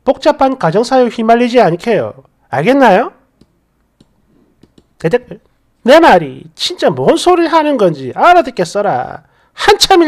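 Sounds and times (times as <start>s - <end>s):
computer mouse clicks: 3.4s - 5.0s.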